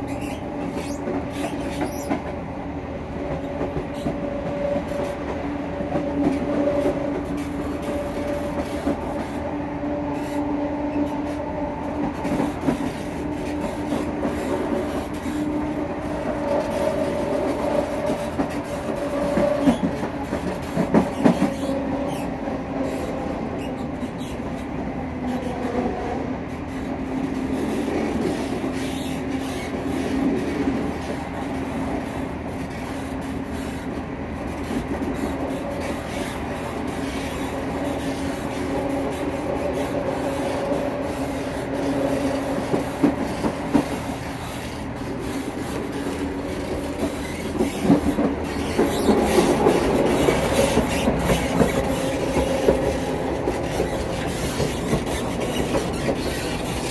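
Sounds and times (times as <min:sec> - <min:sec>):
train wheels rumbling on rail: 0:00.0 - 0:56.9.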